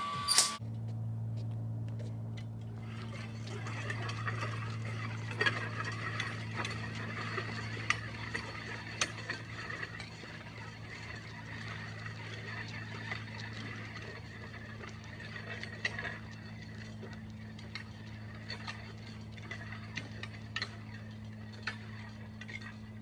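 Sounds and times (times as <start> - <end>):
steady low hum: 0.0 - 23.0
weight sled scraping over asphalt: 1.4 - 23.0
metal plates clanking: 2.7 - 23.0.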